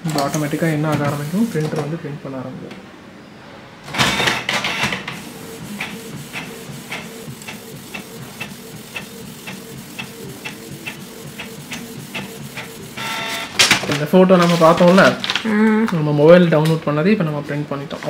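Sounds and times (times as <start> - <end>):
printer motor hum: 3.9 - 13.7
print head clicking: 3.9 - 15.2
sheet drawn into printer: 4.2 - 15.1.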